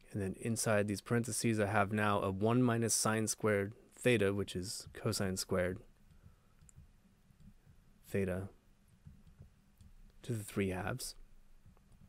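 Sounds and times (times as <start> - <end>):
stylus clicking on pen tablet: 6.0 - 7.8, 8.9 - 10.2.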